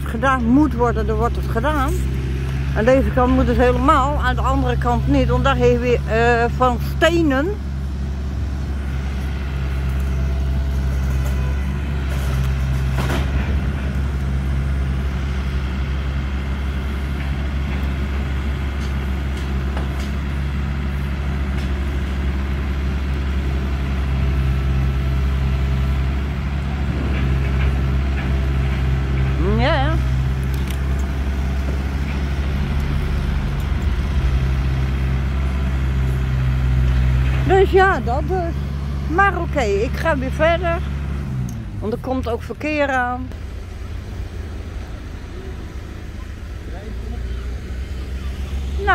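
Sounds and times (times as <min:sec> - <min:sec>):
diesel engine idling: 0:00.0 - 0:48.9.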